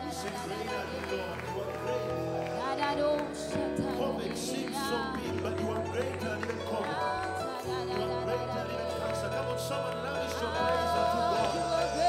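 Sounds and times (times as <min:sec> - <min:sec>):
electric guitar chords: 0:00.0 - 0:12.0
person singing through a pa: 0:00.0 - 0:12.0.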